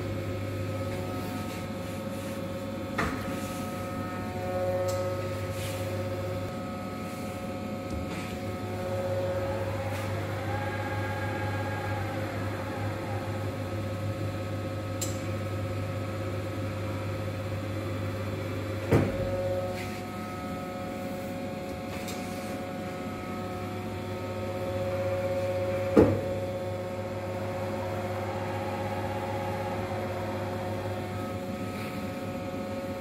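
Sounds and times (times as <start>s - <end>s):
drive whine: 0.0s - 33.0s
grinding machine humming: 2.6s - 21.8s, 22.6s - 33.0s.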